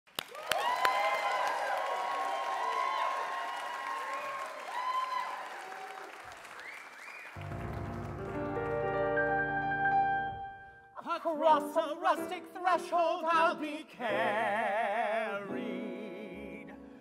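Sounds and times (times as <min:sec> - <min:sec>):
audience applause: 0:00.1 - 0:09.4
cheers and whoops: 0:00.2 - 0:07.3
instrumental music: 0:07.4 - 0:14.5.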